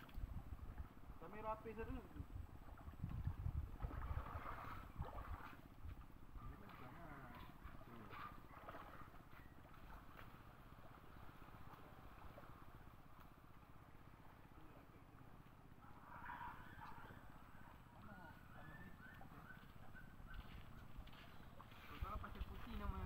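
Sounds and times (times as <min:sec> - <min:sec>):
low rumbling: 0:00.0 - 0:06.6
faint distant voices: 0:14.1 - 0:23.0.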